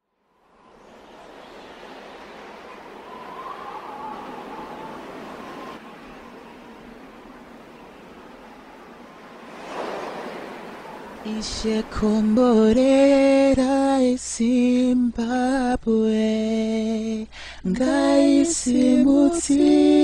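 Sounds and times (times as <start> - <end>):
steady rushing noise: 0.2 - 13.7.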